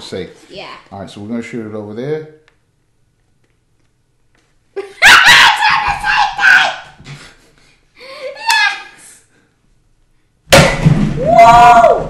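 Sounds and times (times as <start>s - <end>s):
people yelping: 5.0s - 7.0s.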